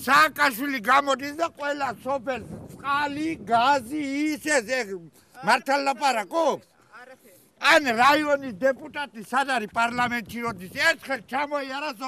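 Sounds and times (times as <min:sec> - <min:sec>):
elderly man speaking agitatedly: 0:00.0 - 0:12.0.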